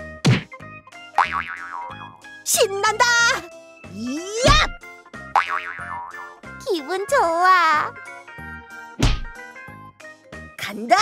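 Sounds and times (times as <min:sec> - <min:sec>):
children's background music loop: 0:02.2 - 0:05.2, 0:06.1 - 0:11.0.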